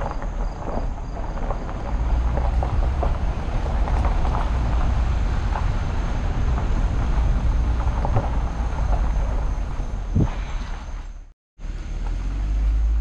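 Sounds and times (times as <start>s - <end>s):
gravel ticking under wheels: 0.0s - 13.0s
vehicle driving over gravel: 0.0s - 13.0s.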